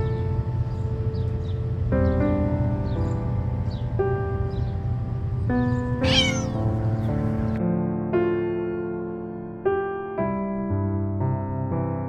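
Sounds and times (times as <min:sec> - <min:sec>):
slow piano music: 0:00.0 - 0:12.0
kitten meowing: 0:06.0 - 0:06.6.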